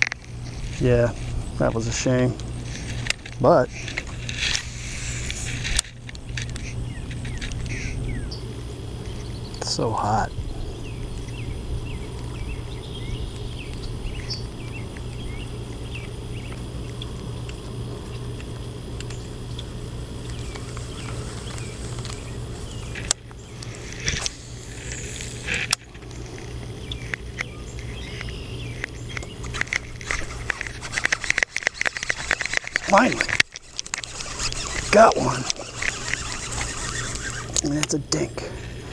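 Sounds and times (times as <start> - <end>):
fishing reel clicking: 27.1 - 38.5.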